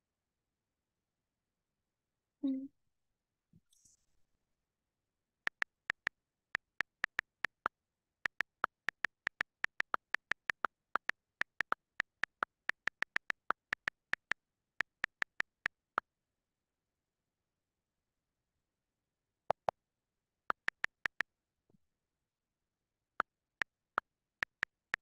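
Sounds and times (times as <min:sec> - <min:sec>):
on-screen keyboard clicks: 0:05.5 - 0:07.7, 0:08.3 - 0:15.8, 0:19.5 - 0:19.7, 0:20.5 - 0:21.2, 0:24.4 - 0:25.0.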